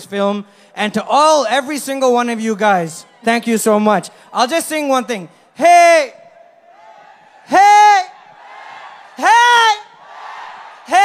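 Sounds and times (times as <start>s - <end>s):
man shouting into microphone: 0.0s - 6.6s, 7.4s - 8.3s, 9.1s - 10.0s, 10.7s - 11.0s.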